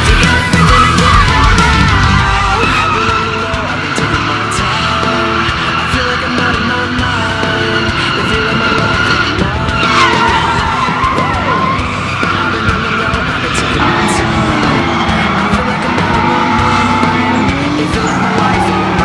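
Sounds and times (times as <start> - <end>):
background music: 0.0 - 19.0
engines revving: 0.0 - 19.0
tires squealing: 0.0 - 19.0.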